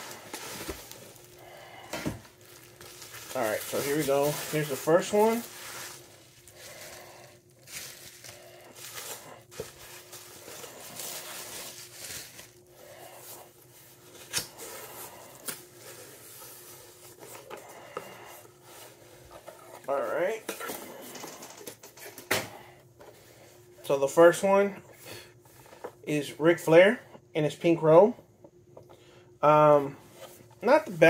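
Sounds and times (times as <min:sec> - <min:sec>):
bubble wrap crinkling: 0:00.0 - 0:18.0.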